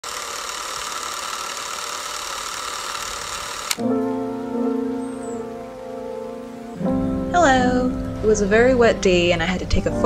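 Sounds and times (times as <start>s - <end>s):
music: 3.8s - 10.0s.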